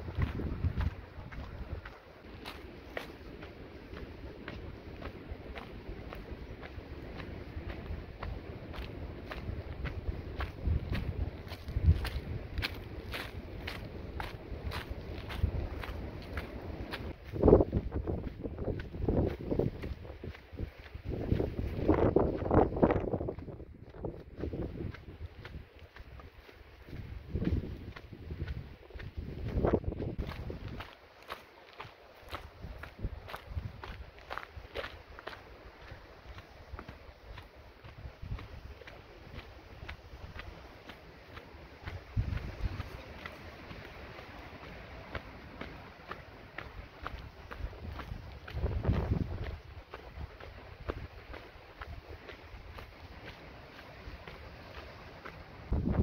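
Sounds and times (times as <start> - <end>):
wind rumble on microphone: 0.0 - 31.0, 31.8 - 56.0
footsteps crunching on gravel: 0.0 - 56.0.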